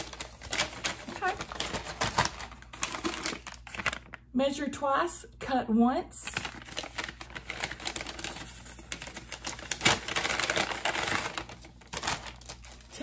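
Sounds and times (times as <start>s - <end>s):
packaging rustling and crinkling: 0.0s - 4.2s, 6.2s - 13.0s.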